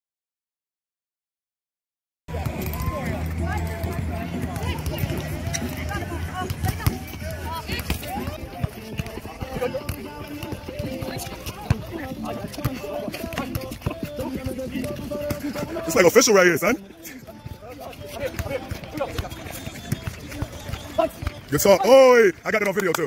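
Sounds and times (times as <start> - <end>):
chatter and calls of people: 2.3 - 23.0
ball being kicked: 2.4 - 15.7, 17.3 - 21.5.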